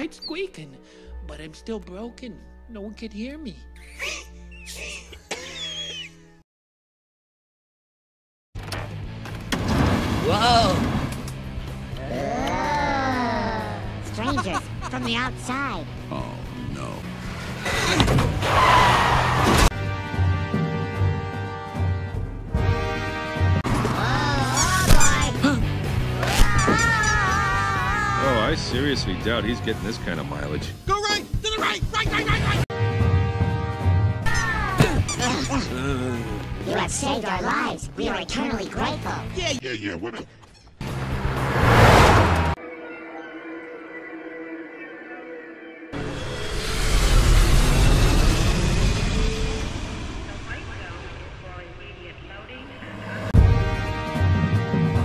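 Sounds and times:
cartoon soundtrack music: 10.2 - 41.3, 42.6 - 49.7, 52.9 - 55.0
high-pitched character voices: 23.9 - 25.6.

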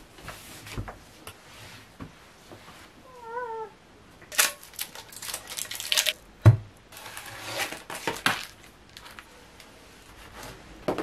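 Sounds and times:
wavering meow-like cry: 3.1 - 3.8.

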